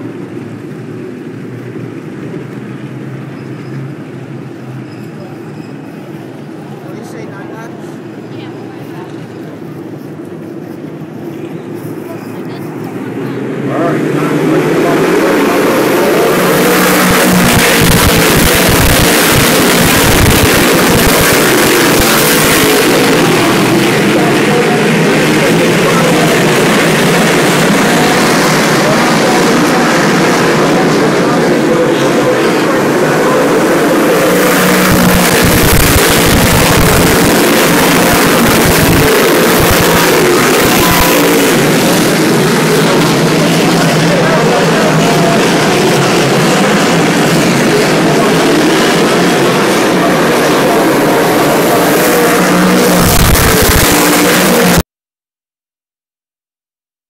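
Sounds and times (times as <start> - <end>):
race car engines roaring: 0.0 - 54.8.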